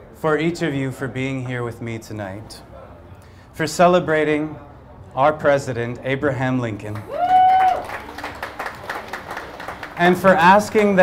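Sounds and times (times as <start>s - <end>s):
small group applauding: 6.9s - 11.0s.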